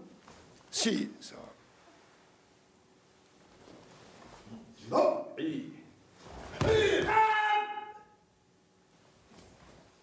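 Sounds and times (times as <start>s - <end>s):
loud shouted martial arts cry: 6.6s - 8.2s.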